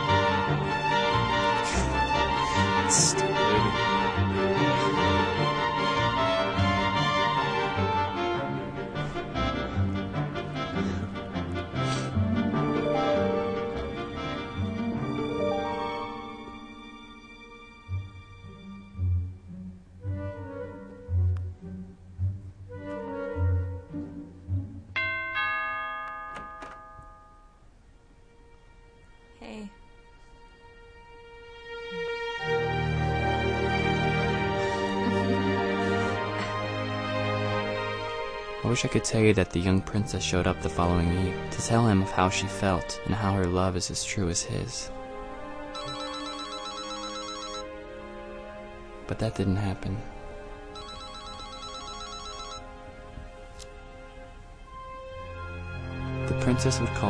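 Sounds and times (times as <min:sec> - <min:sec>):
soft background music: 0:00.0 - 0:57.0
two-tone doorbell chime: 0:25.0 - 0:27.6, 0:45.8 - 0:47.7, 0:50.8 - 0:52.6
flip phone ringing: 0:45.8 - 0:47.7, 0:50.8 - 0:52.6.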